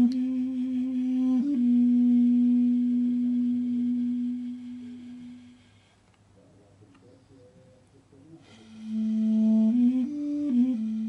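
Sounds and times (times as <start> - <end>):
duduk playing slow melody: 0.0 - 5.9, 8.8 - 11.0.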